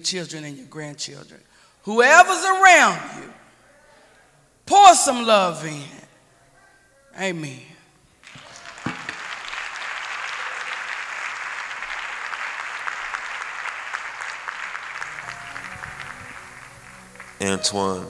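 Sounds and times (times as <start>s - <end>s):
audience applauding: 8.2s - 18.0s
soft instrumental music: 15.0s - 18.0s.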